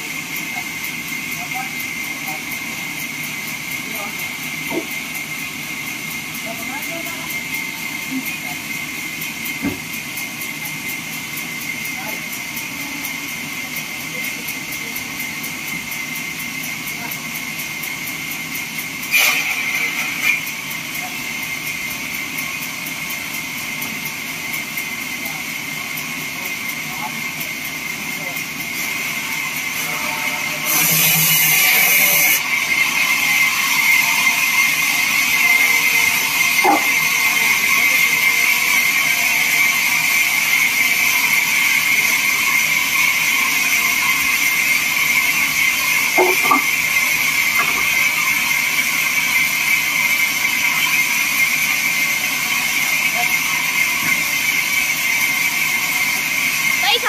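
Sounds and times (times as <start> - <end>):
band saw cutting wood: 19.0 - 20.8, 28.6 - 56.8.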